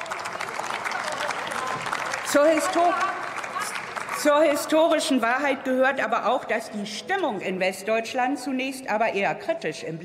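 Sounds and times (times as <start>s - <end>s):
crowd applauding: 0.0s - 4.8s.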